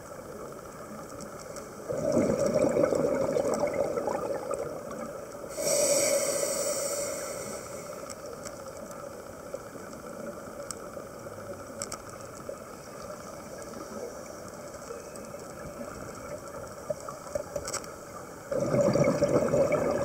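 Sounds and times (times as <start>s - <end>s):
faint clicks: 0.0s - 1.9s, 7.2s - 18.5s
low underwater hiss: 0.0s - 20.0s
underwater bubbles rushing: 1.8s - 5.6s, 18.4s - 20.0s.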